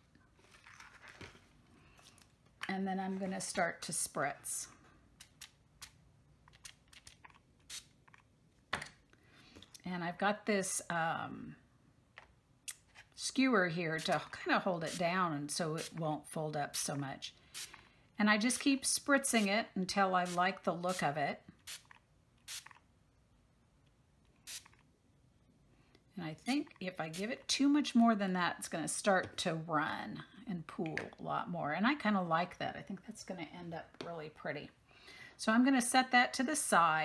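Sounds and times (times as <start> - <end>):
spray bottle spritzes: 7.7 - 7.9, 17.5 - 17.8, 21.6 - 22.8, 24.4 - 24.8.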